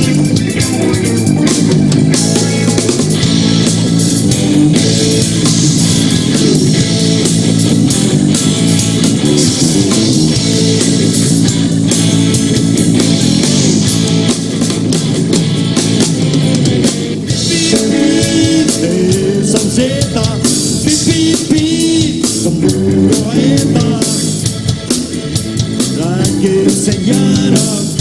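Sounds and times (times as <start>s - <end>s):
rock band playing: 0.0s - 28.0s.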